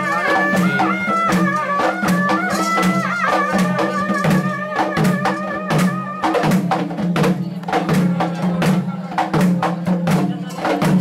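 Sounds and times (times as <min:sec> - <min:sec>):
wind instrument wavering notes: 0:00.0 - 0:06.3
drums in steady rhythm: 0:00.0 - 0:11.0.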